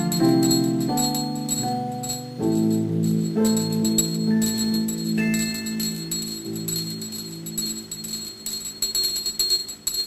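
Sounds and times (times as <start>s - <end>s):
piano chord: 0.0s - 8.2s
jingle bells shaken: 0.0s - 10.0s.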